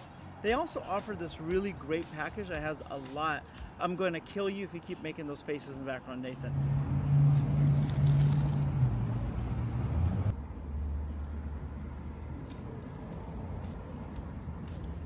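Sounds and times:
traffic hum: 0.0 - 15.0
vehicle engine humming: 6.3 - 15.0.

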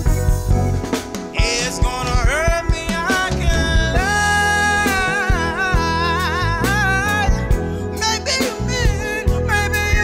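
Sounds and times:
live band with bass and drums: 0.0 - 10.0
man singing into microphone: 1.2 - 10.0.

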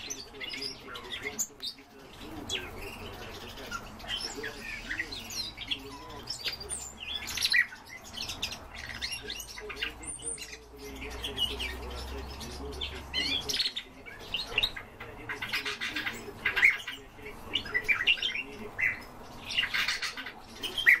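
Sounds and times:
sparrow chirping: 0.0 - 21.0.

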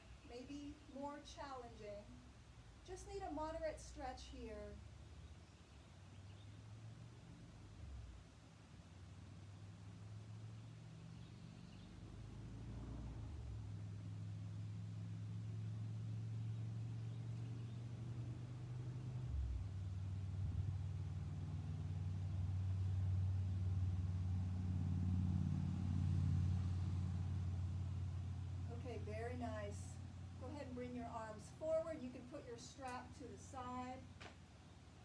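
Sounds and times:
low engine hum: 2.8 - 35.0.

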